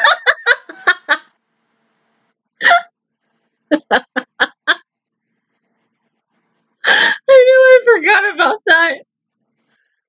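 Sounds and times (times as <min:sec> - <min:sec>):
woman laughing: 0:00.0 - 0:01.2, 0:02.6 - 0:02.9, 0:03.7 - 0:04.8.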